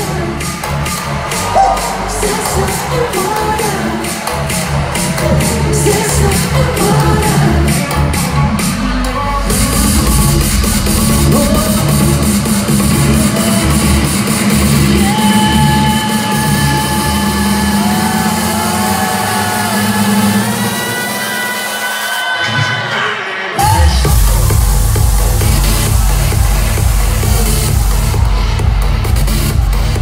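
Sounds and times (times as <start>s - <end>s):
heavy bass beat: 0.0s - 21.2s, 23.6s - 30.0s
electronic dance music: 0.0s - 30.0s.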